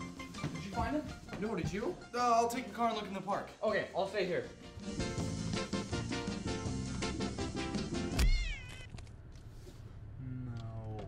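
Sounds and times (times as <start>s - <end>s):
music playing: 0.0s - 8.2s
cat yowling: 8.2s - 8.9s.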